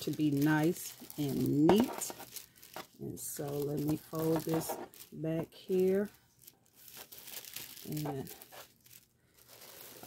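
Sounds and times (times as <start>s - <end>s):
tissue paper crinkling: 0.0s - 10.0s.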